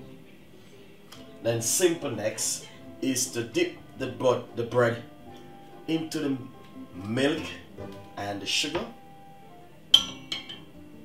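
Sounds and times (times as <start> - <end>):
soft background music: 0.0 - 11.0
kitchenware clinking: 9.9 - 10.8.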